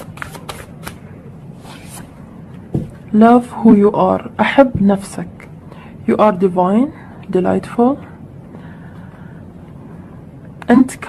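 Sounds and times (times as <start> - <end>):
cards clicking: 0.0 - 1.0
cards rustling: 0.0 - 2.1.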